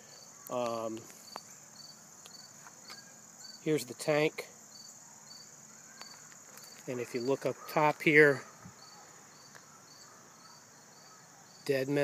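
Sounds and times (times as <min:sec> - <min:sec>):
short insect chirps: 0:00.0 - 0:07.4, 0:08.5 - 0:11.9
insect chorus buzzing: 0:00.0 - 0:12.0.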